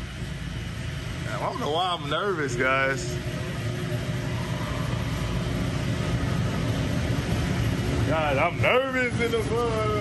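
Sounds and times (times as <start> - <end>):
shop machinery humming: 0.0 - 10.0.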